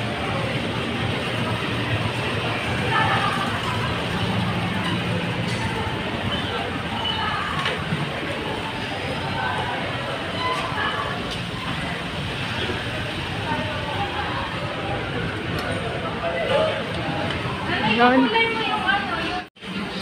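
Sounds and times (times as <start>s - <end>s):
indistinct voices of passers-by: 0.0s - 20.0s
traffic noise: 0.0s - 20.0s.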